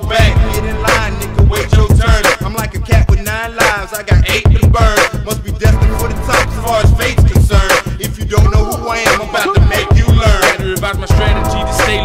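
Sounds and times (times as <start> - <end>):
heavy kick drums: 0.0 - 12.0
rapping over a beat: 0.0 - 12.0.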